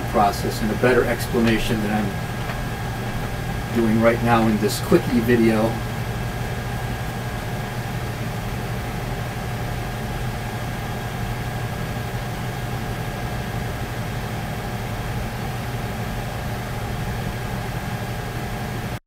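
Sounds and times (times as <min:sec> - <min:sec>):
mechanical hum with low drone: 0:00.0 - 0:19.0.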